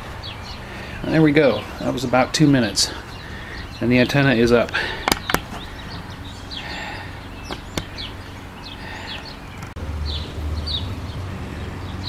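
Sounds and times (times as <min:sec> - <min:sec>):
steady low hum: 0:00.0 - 0:10.0
outdoor background noise: 0:00.0 - 0:12.0
small birds chirping: 0:00.0 - 0:12.0
sharp clicks: 0:04.7 - 0:05.7.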